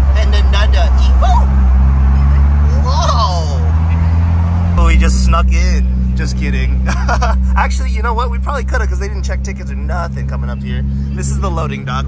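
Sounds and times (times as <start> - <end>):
car engine droning: 0.0 - 12.0
voices: 0.0 - 12.0.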